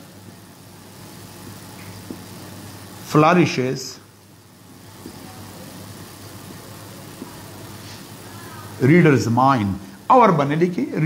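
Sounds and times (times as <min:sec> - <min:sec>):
low room hum with hiss: 0:00.0 - 0:11.0.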